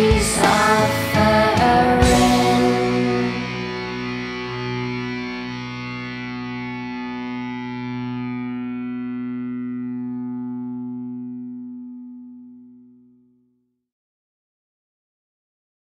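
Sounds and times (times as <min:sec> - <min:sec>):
distorted electric guitar chord ringing: 0:00.0 - 0:13.2.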